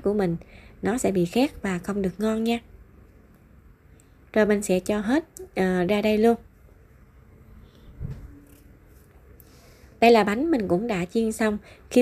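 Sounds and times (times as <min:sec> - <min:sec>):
soft low thump: 0:07.9 - 0:08.4.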